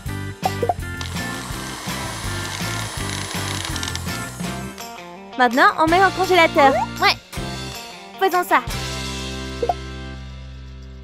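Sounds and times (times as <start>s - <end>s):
background music with steady beat: 0.0s - 11.0s
blender running: 1.0s - 4.8s.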